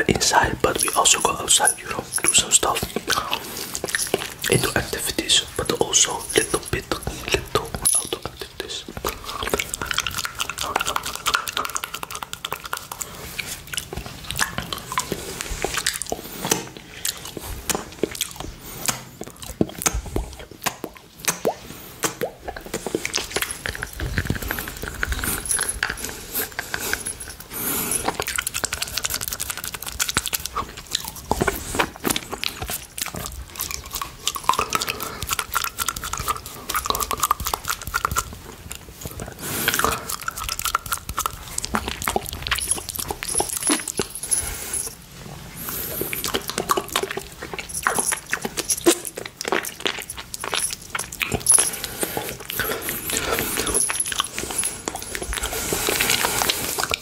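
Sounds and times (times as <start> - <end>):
wet mouth sucking and licking: 0.0 - 57.0.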